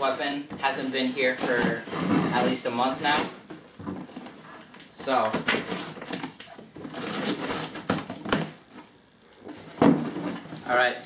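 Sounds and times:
cardboard flaps scraping: 0.0 - 4.6.

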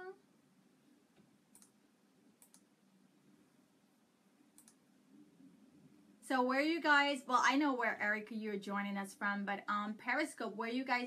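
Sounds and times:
faint sharp clicks: 1.1 - 1.8, 2.4 - 2.7, 4.5 - 4.8.

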